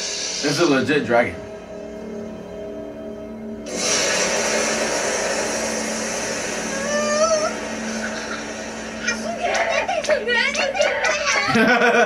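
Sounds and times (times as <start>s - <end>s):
rushing noise effect: 3.6s - 11.3s
rising vocal cry: 6.6s - 11.6s.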